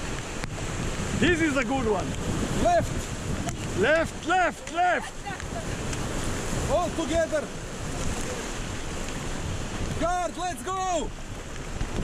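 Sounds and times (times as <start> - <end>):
whitewater rushing: 0.0 - 12.0
wind buffeting microphone: 0.0 - 12.0.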